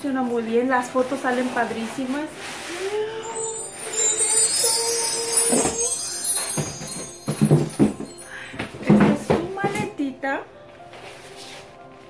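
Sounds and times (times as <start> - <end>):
background music: 2.4 - 12.0
bell-like chiming shimmer: 3.0 - 9.0
voice-like melodic line: 3.2 - 8.6.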